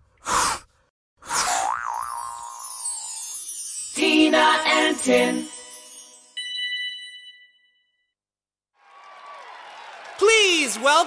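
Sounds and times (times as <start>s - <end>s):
wobbling boing tone: 1.6s - 2.6s
high falling sparkly shimmer: 2.2s - 7.3s.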